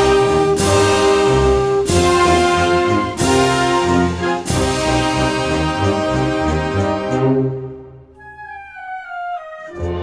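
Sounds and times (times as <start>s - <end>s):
heavy low brass: 0.0s - 7.7s
wind band playing a march: 0.0s - 7.7s.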